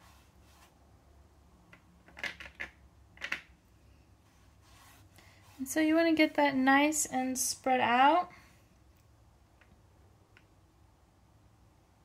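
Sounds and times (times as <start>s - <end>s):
brush strokes on paper: 0.0s - 0.9s, 4.2s - 6.4s.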